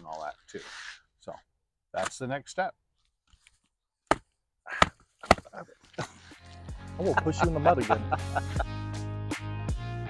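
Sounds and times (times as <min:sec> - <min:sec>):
background music: 0:06.0 - 0:10.0.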